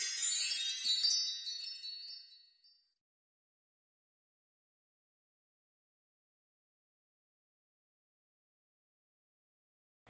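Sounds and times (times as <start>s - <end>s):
tinkling magical chime: 0.0s - 3.0s.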